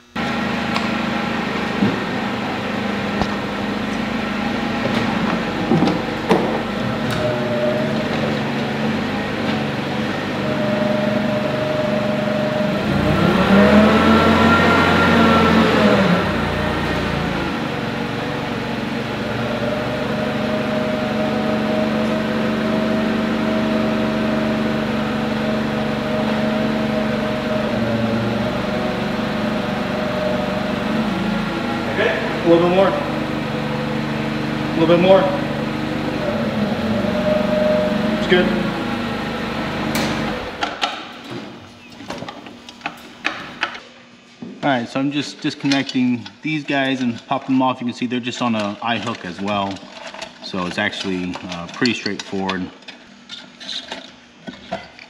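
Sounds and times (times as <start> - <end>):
forklift running: 0.0 - 43.8.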